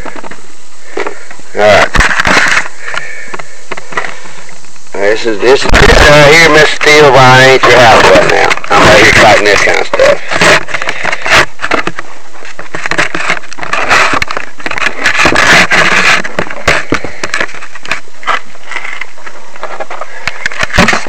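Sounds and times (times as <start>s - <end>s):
microphone handling noise: 0.0s - 21.0s.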